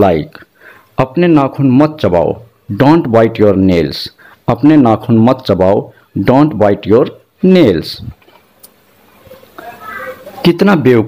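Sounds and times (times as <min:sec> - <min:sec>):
faint high-pitched animal call: 0:09.2 - 0:10.4.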